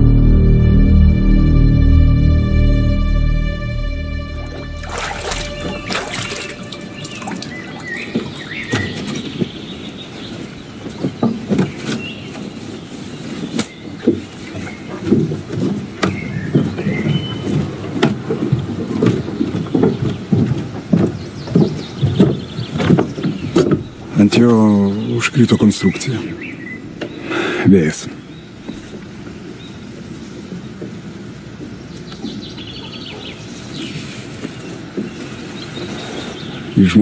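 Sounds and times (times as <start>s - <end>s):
high bird chirps: 4.4s - 9.9s
water lapping against wooden dock: 4.8s - 24.9s.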